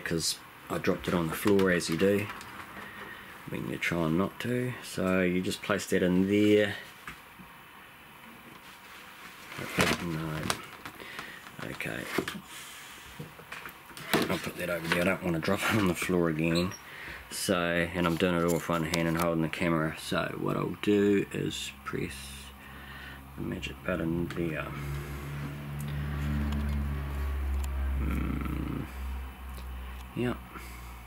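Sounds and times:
low machine hum: 0:14.2 - 0:31.0.

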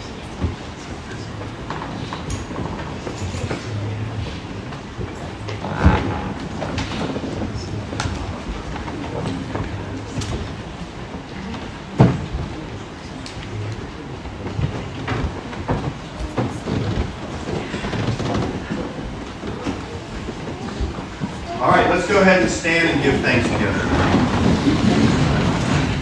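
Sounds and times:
low rumbling room noise: 0:00.0 - 0:26.0
small knocks and rustles: 0:00.3 - 0:21.5.

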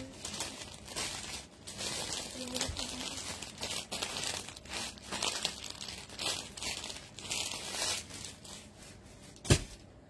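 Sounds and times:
crinkling and rustling: 0:00.0 - 0:10.0.

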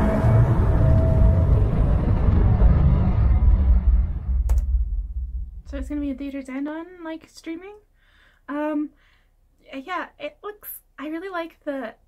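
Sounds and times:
deep low rumble: 0:00.0 - 0:06.3.

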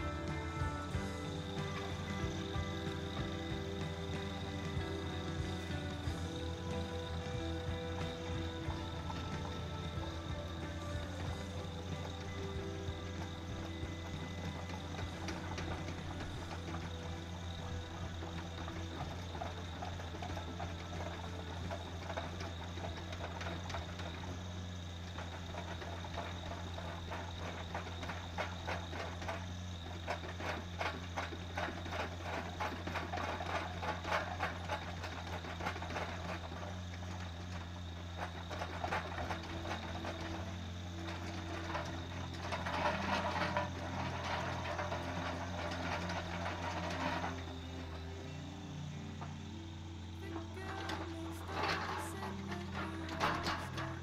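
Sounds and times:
bucket rattling: 0:00.0 - 0:54.0
diesel engine droning: 0:00.0 - 0:54.0.

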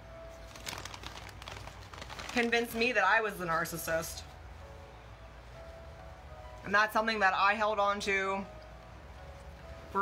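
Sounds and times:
crackling and crinkling while eating: 0:00.3 - 0:03.9.

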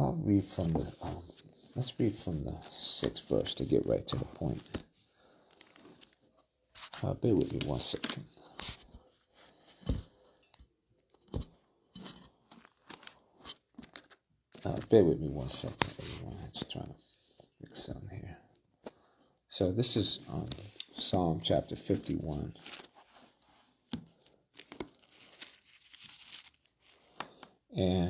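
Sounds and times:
thin paper pages rustling: 0:00.4 - 0:09.6, 0:11.3 - 0:16.7, 0:21.8 - 0:27.4
thin paper rustling: 0:24.5 - 0:27.2.

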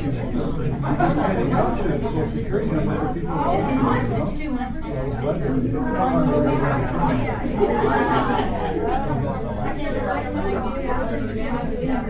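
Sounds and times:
overlapping conversation: 0:00.0 - 0:12.0.

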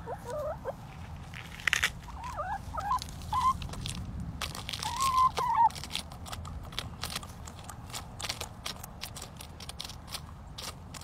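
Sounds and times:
hen calls: 0:00.0 - 0:00.8
hens pecking lettuce crunching: 0:00.0 - 0:11.0.

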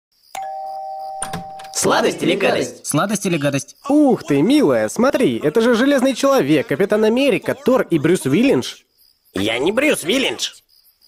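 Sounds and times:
two-tone doorbell ringing: 0:00.4 - 0:01.9.

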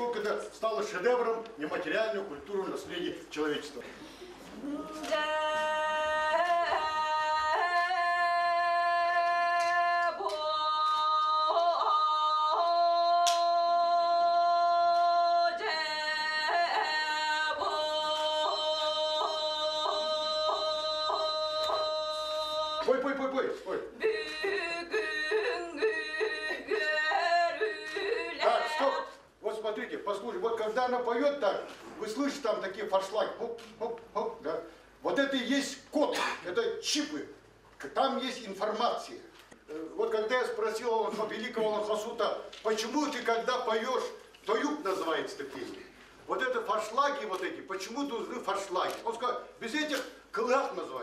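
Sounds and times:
woman singing unaccompanied: 0:04.6 - 0:22.9, 0:24.0 - 0:29.2.

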